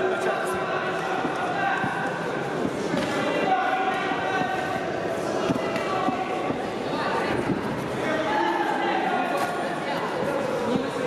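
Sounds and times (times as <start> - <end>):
voices shouting in echoing hall: 0.0 - 11.0.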